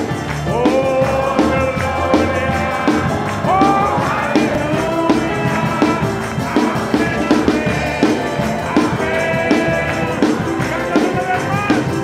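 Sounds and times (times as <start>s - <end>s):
drums playing steady beat: 0.0s - 12.0s
people singing worship song: 0.0s - 12.0s
tambourine: 0.0s - 12.0s.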